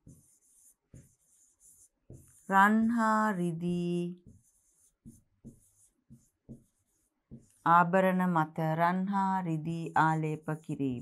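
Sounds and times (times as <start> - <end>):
pen scratching on paper: 0.0 - 7.8.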